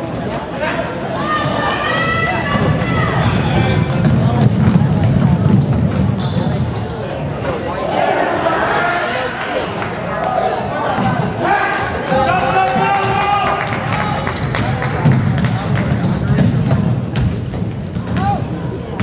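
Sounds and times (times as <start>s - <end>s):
basketball bouncing on wooden court: 1.4s - 6.9s, 14.2s - 19.0s.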